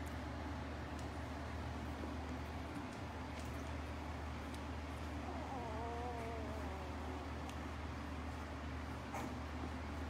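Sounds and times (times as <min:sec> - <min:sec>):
puppy whining: 0:05.1 - 0:07.6.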